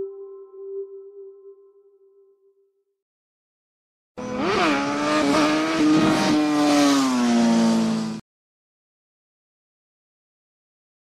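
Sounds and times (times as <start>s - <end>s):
loud buzzing tone: 4.2s - 6.5s.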